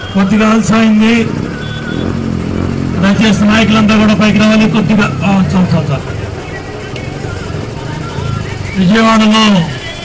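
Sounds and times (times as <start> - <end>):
man's amplified speech: 0.0 - 1.6, 2.9 - 10.0
vehicle engine humming: 0.0 - 10.0.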